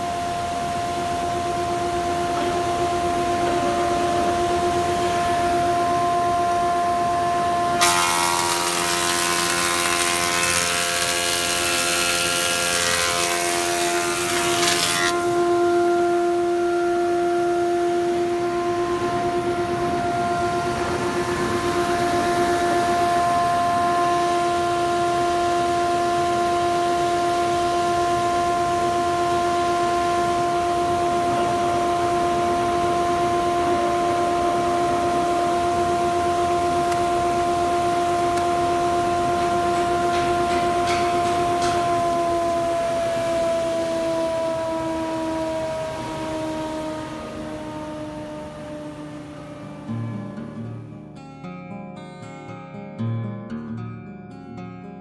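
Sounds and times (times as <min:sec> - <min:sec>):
planer running hum: 0:00.0 - 0:50.8
planer cutting board: 0:07.8 - 0:15.5, 0:38.3 - 0:44.3.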